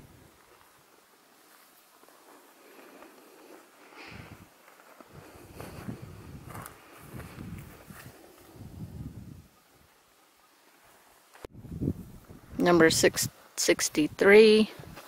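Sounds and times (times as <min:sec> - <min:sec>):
footsteps on grass: 0:04.5 - 0:08.4.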